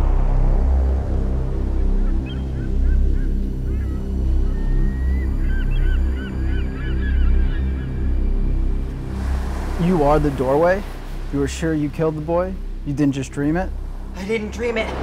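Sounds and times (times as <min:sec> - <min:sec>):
low pulsing music drone: 0:00.0 - 0:15.0
gulls calling: 0:01.5 - 0:15.0.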